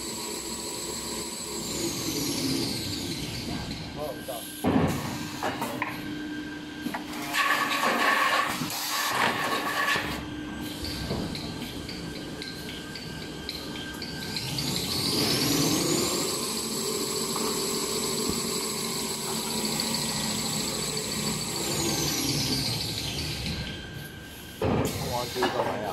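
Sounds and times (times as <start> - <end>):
machine whine: 0.0 - 25.9.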